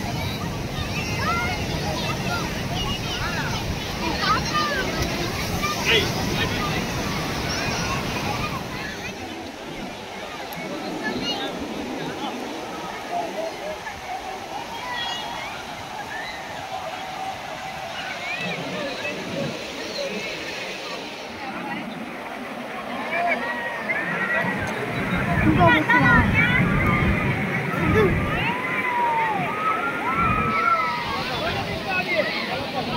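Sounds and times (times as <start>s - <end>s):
crowd talking and calling out: 0.0s - 32.9s
ocean surf washing in: 0.0s - 32.9s.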